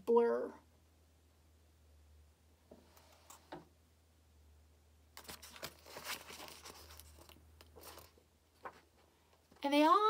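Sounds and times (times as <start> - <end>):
book pages rustling: 5.2 - 9.5.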